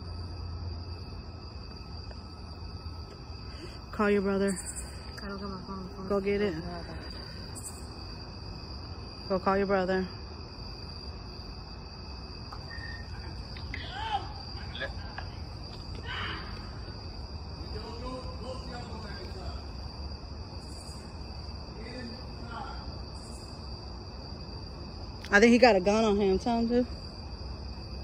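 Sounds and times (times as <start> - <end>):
night insects trilling: 0.0 - 28.0.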